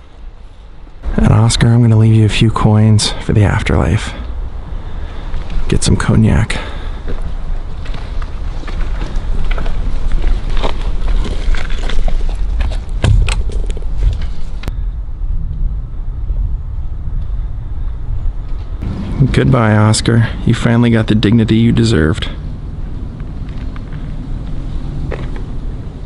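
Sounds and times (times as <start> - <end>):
wind buffeting microphone: 1.0 - 26.0.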